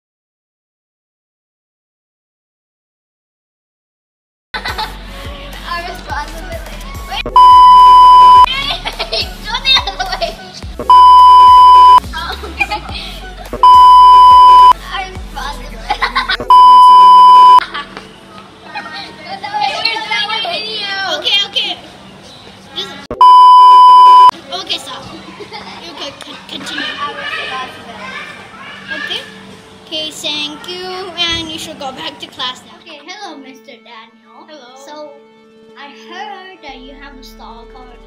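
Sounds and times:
children's voices and laughter: 0:04.6 - 0:23.1, 0:23.9 - 0:35.1
electronic beep tone: 0:07.3 - 0:08.5, 0:10.8 - 0:12.0, 0:13.6 - 0:14.8, 0:16.5 - 0:17.6, 0:23.1 - 0:24.3.

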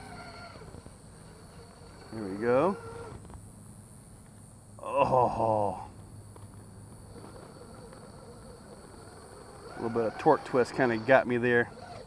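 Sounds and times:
small electric motor humming: 0:00.0 - 0:03.6, 0:05.4 - 0:12.0
insects buzzing: 0:00.0 - 0:12.0.

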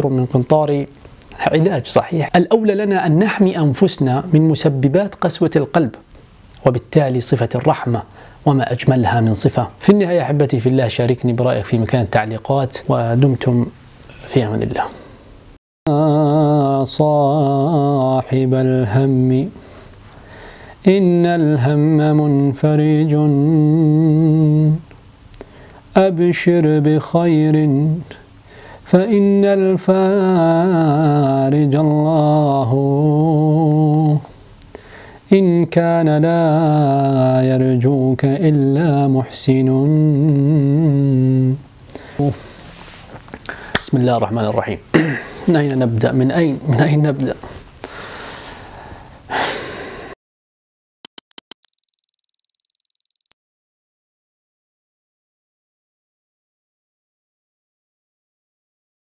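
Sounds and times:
man singing unaccompanied: 0:15.9 - 0:19.6, 0:20.8 - 0:24.8, 0:26.0 - 0:28.2, 0:28.9 - 0:34.3, 0:35.3 - 0:41.6
man's sharp breath: 0:19.6 - 0:20.8, 0:28.5 - 0:28.8, 0:34.7 - 0:35.2, 0:47.9 - 0:50.2
quick electronic clicks: 0:51.0 - 0:53.4
high-pitched fluttering beep: 0:51.3 - 0:53.4.

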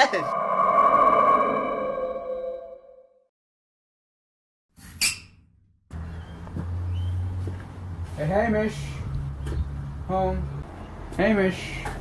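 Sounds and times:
sustained ringing tone: 0:00.0 - 0:03.1.

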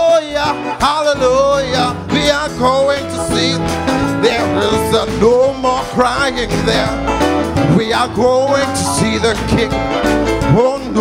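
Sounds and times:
band with guitar and bass: 0:00.0 - 0:11.0
man singing into a microphone: 0:00.0 - 0:11.0.

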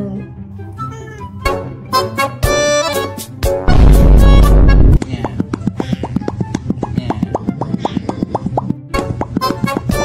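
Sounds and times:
music with steady beat: 0:01.4 - 0:10.0
cartoonish mouth pops: 0:04.9 - 0:10.0.

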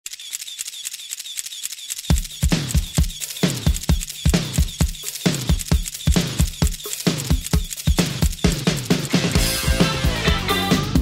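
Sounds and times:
camera shutter clicking: 0:00.1 - 0:09.4.

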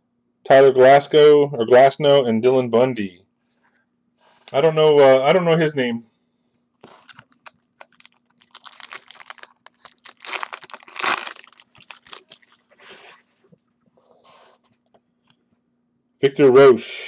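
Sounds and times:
foil pack tearing and crinkling: 0:07.0 - 0:12.7.

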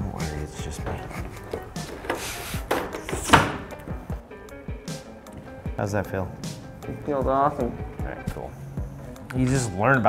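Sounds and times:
background music: 0:00.0 - 0:10.0
tools shifting in drawer: 0:00.8 - 0:03.6
drawer pushed shut: 0:02.0 - 0:03.7.

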